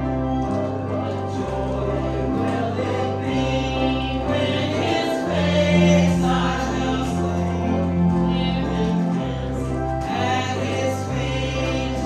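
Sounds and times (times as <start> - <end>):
gospel choir singing: 0.0 - 12.0.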